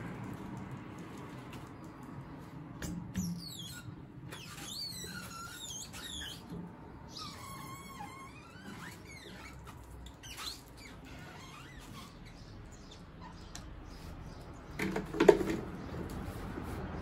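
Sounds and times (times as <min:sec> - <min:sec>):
squeegee squeaking on wet glass: 0:03.1 - 0:14.4.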